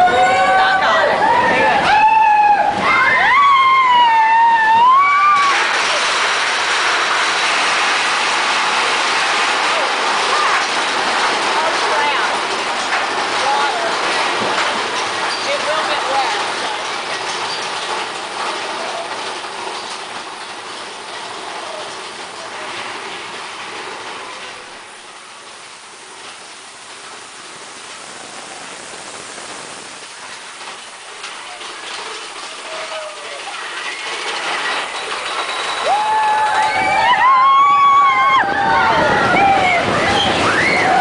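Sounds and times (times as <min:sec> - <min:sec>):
roller coaster wheels rattling: 0:00.0 - 0:41.0.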